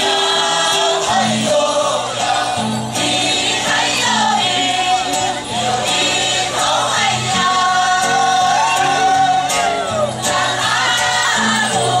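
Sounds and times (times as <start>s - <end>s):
mixed chorus singing: 0.0s - 12.0s.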